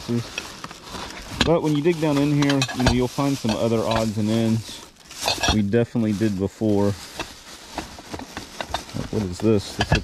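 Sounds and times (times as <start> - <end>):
plastic bags rustling: 0.0 - 10.0
items knocking in a box: 7.1 - 10.0.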